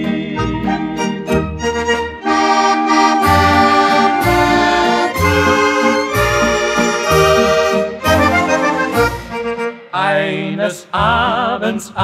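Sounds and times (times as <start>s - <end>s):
accordion dance orchestra waltz: 0.0s - 10.0s.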